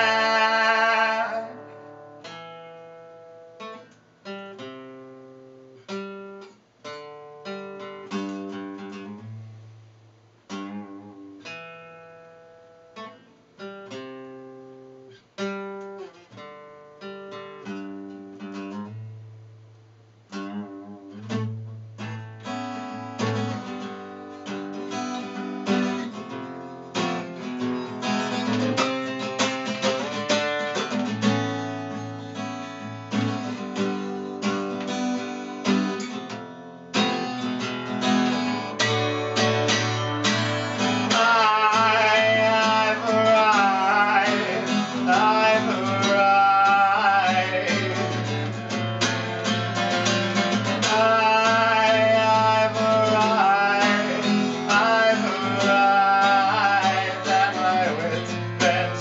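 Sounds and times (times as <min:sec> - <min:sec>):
man singing: 0:00.0 - 0:01.8, 0:39.7 - 0:59.0
acoustic guitar: 0:00.0 - 0:59.0.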